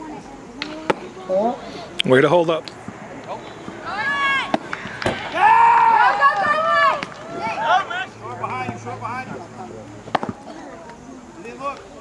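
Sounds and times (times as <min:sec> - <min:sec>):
high-pitched voices shouting: 0:05.2 - 0:08.2.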